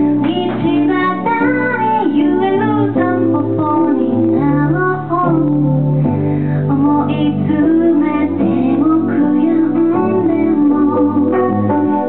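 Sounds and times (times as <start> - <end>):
woman singing: 0.0 - 5.9, 6.6 - 12.0
piano chords: 0.0 - 12.0.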